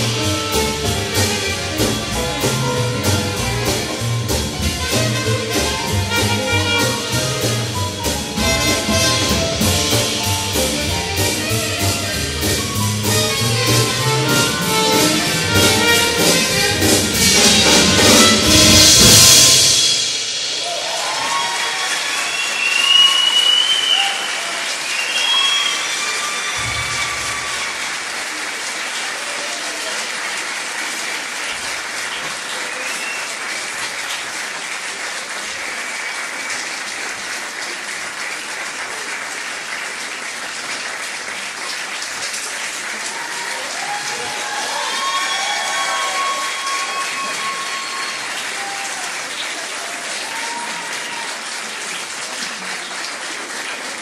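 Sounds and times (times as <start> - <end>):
audience applauding: 0.0 - 54.0
cheering shouts: 20.5 - 28.4, 29.0 - 30.1, 42.9 - 51.9.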